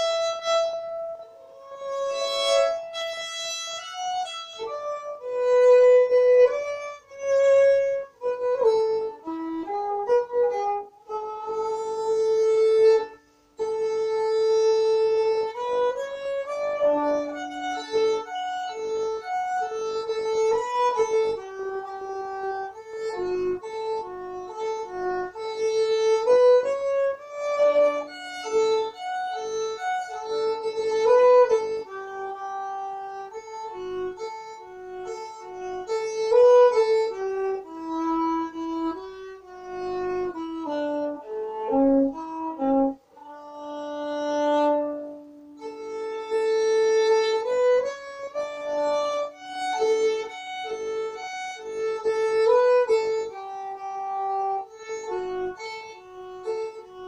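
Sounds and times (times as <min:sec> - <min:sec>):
solo fiddle playing: 0:00.0 - 0:57.0.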